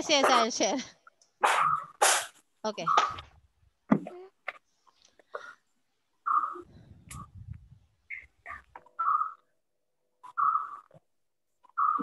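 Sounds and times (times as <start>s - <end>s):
bird calling: 1.4s - 3.4s, 6.2s - 7.3s, 8.0s - 9.5s, 10.2s - 11.0s, 11.6s - 12.0s.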